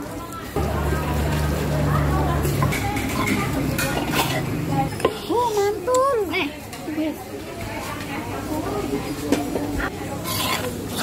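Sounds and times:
stone pestle grinding and scraping: 0:10.2 - 0:11.0.

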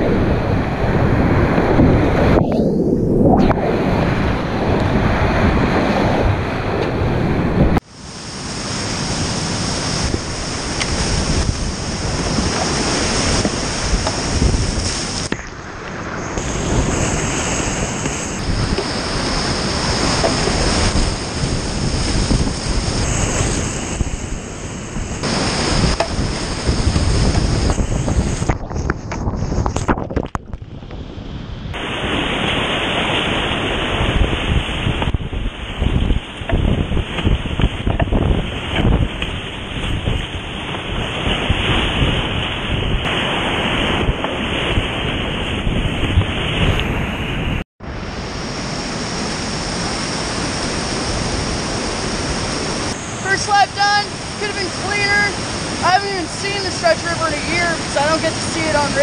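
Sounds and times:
paddle splashes: 0:07.8 - 0:24.0, 0:25.2 - 0:28.8
whitewater rapids rushing: 0:07.9 - 0:28.4, 0:48.1 - 0:59.0.

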